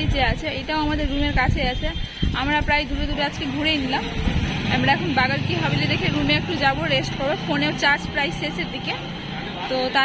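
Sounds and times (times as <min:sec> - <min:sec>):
voices talking: 0:00.7 - 0:10.0
vehicle engine humming: 0:02.6 - 0:10.0.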